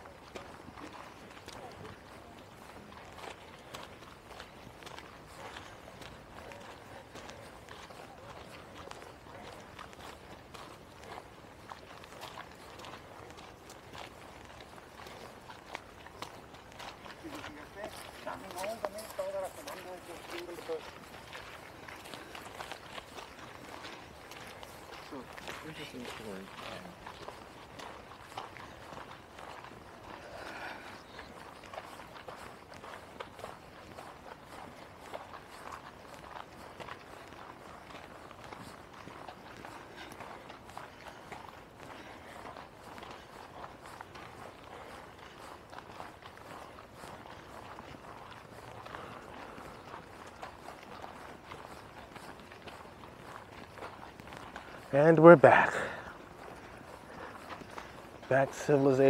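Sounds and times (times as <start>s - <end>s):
footsteps on dry leaves: 9.8s - 59.0s.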